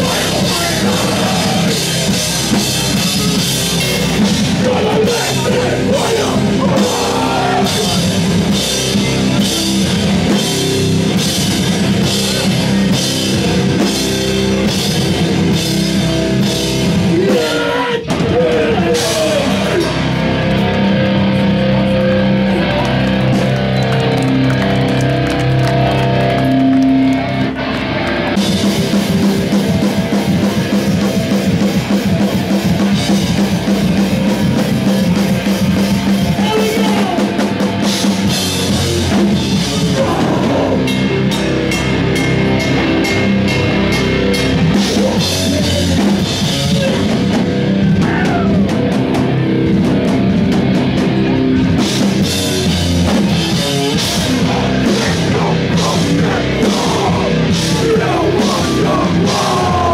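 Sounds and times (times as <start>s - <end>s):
drum and cymbal hits: 0.0s - 20.8s, 28.4s - 59.9s
heavy band playing live: 0.0s - 59.9s.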